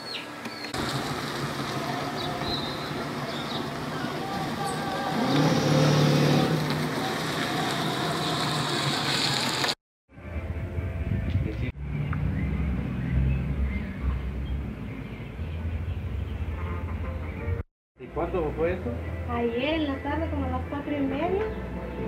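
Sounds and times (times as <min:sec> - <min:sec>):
outdoor noise: 0:00.0 - 0:22.0
motor vehicle on road: 0:00.6 - 0:17.6.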